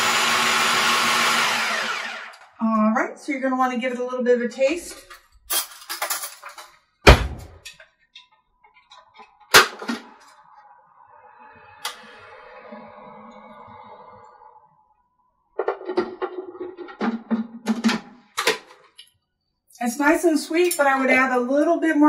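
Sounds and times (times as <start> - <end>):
kitchen clatter: 4.9 - 6.8, 15.6 - 19.0.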